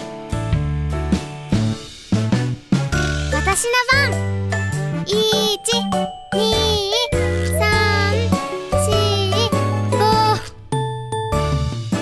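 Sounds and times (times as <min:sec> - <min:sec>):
children's song music: 0:00.0 - 0:12.0
child singing numbers: 0:03.3 - 0:04.2, 0:05.0 - 0:10.5.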